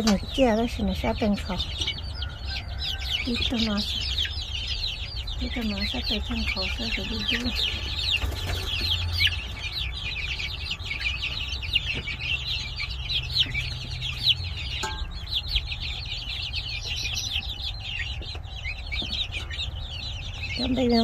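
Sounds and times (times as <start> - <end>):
chicks peeping: 0.0 - 21.0
low steady hum: 0.0 - 21.0.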